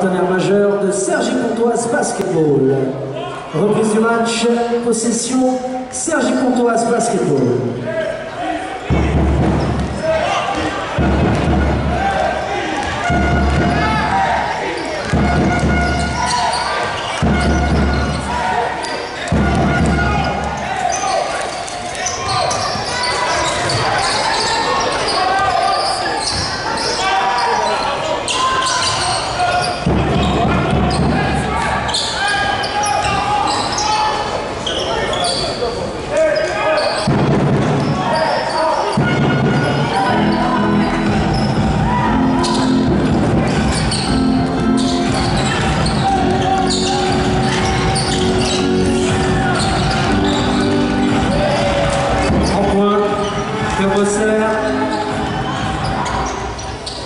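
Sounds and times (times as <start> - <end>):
players' voices: 0.0 - 57.0.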